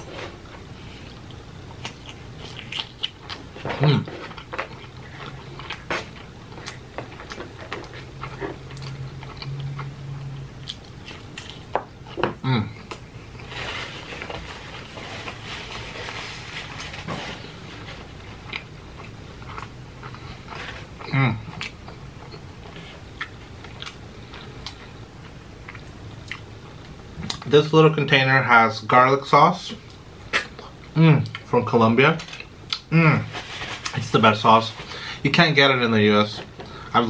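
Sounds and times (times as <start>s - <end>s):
person chewing pizza: 0.0s - 27.5s, 32.4s - 35.1s
person humming mm of enjoyment: 12.4s - 13.0s.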